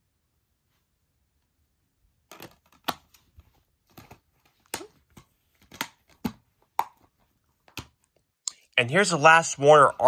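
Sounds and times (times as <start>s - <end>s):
plastic case clicks: 3.9s - 7.0s.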